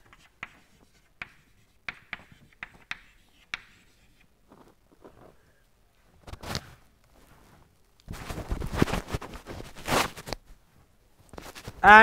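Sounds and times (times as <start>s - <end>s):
chalk scratching: 0.0s - 4.3s
chalk tapping on blackboard: 0.0s - 4.3s.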